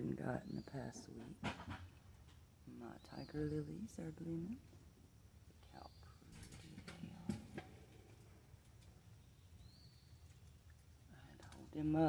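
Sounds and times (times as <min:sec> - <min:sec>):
faint sharp clicks: 0:10.2 - 0:11.7.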